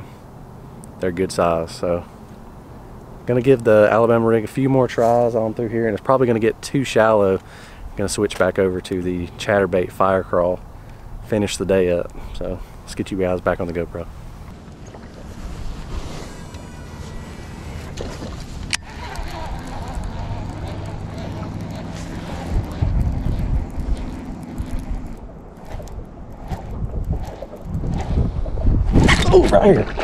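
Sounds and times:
boat and water noise: 0.0s - 30.0s
wind on microphone: 13.6s - 30.0s.

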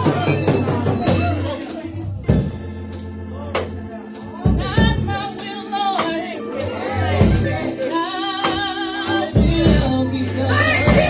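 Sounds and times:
gospel worship singing: 0.0s - 2.4s, 3.5s - 11.0s.

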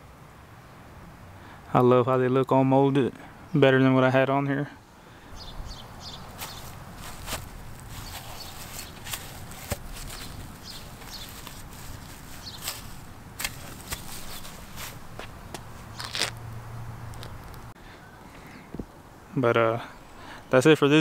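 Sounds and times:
faint outdoor ambience: 0.0s - 21.0s
footsteps on grass: 5.4s - 16.4s.

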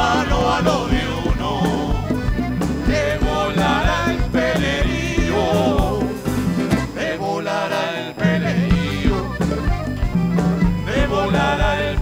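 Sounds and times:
folk group singing over a beat: 0.0s - 12.0s.

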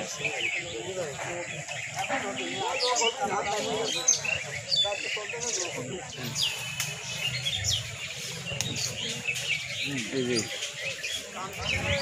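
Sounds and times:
low background murmur: 0.0s - 12.0s
small birds chirping: 0.0s - 12.0s.

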